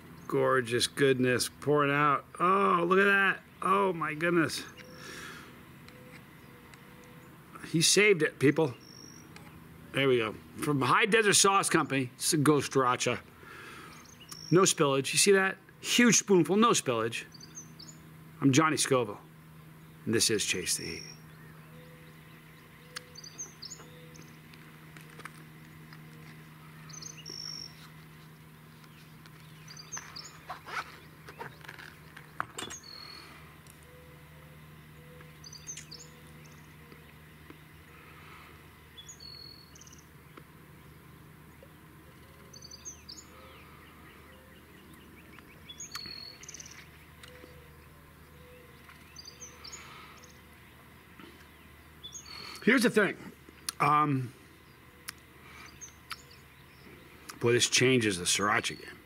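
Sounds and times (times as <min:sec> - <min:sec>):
low steady hum: 0:00.0 - 0:59.0
small bird chirping: 0:04.6 - 0:07.4, 0:08.7 - 0:09.8, 0:13.6 - 0:14.7, 0:17.2 - 0:18.3, 0:20.8 - 0:52.7, 0:54.6 - 0:57.4.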